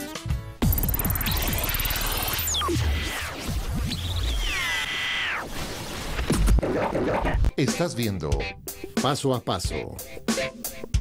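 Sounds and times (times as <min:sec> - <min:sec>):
electronic jingle over low bass: 0:00.6 - 0:03.1
sliding electronic tones: 0:00.6 - 0:04.9.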